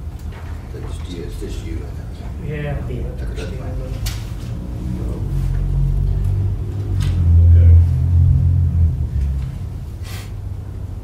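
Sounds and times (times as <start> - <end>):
loud low rumble: 4.4 - 11.0.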